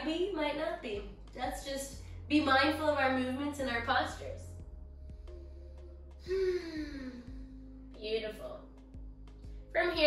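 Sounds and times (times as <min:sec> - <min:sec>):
background music with held notes: 0:00.0 - 0:10.0
woman sighing: 0:06.2 - 0:07.6.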